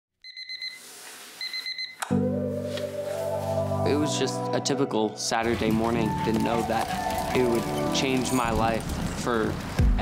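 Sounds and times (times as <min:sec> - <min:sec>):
electronic alarm beeping: 0:00.2 - 0:00.8, 0:01.4 - 0:02.0.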